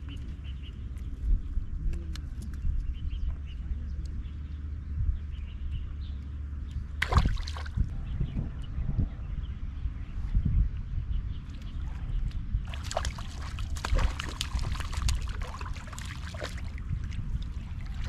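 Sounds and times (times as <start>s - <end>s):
low rumble: 0.0s - 18.0s
water splash: 7.0s - 7.8s, 12.6s - 18.0s
water sloshing: 7.0s - 7.9s, 12.6s - 18.0s.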